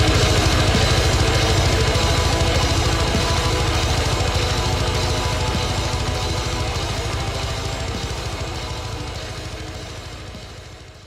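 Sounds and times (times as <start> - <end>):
distorted metal guitars and drums: 0.0 - 11.0.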